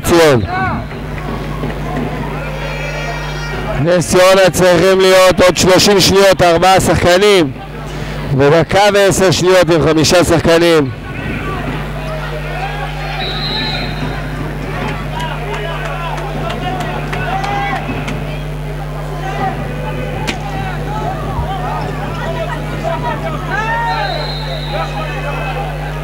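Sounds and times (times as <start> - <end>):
crowd chatter: 0.0 - 26.0
steady hum: 0.0 - 26.0.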